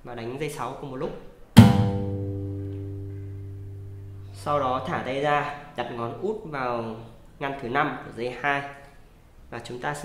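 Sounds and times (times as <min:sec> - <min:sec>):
acoustic guitar bass note: 0:01.6 - 0:05.8.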